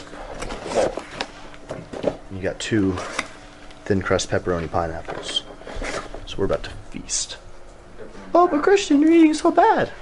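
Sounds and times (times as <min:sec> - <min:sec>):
cardboard scraping: 0:00.3 - 0:01.4, 0:05.1 - 0:06.2.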